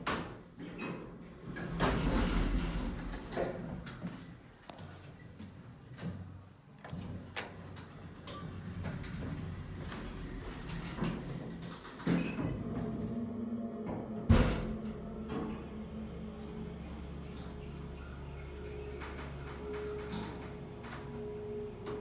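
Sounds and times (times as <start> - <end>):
elevator doors sliding shut: 0.8 - 3.8, 8.4 - 22.0
elevator low hum: 1.3 - 22.0.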